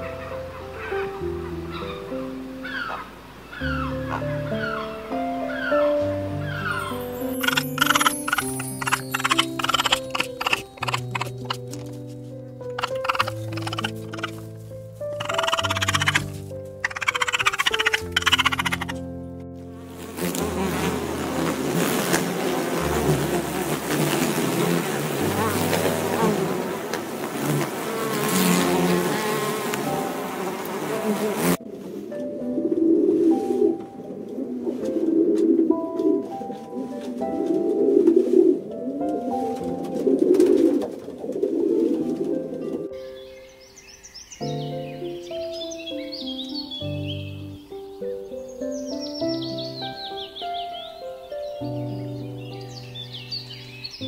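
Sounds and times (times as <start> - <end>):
raccoon kits chittering: 0.0 - 19.0
soft background music: 0.0 - 54.0
wasp buzzing loudly: 6.4 - 11.9, 12.7 - 14.4, 15.1 - 19.0, 19.8 - 31.6.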